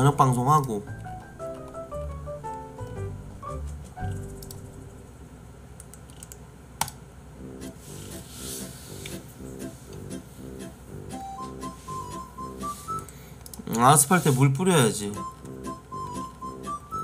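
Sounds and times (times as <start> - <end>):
soft instrumental music: 0.0 - 5.0, 7.4 - 13.2, 14.6 - 17.0
keyboard typing clicks: 4.0 - 4.7.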